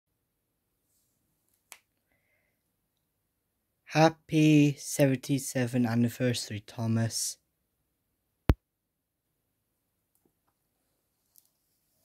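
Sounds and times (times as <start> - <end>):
person speaking: 3.9 - 7.4.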